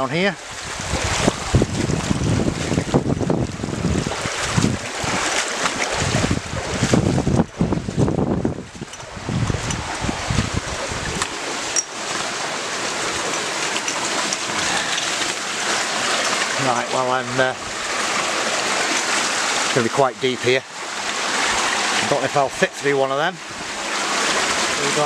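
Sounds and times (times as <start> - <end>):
splashes of wading: 0.0 - 25.0
stream rushing: 0.0 - 25.0
water pouring from pipes: 0.0 - 25.0.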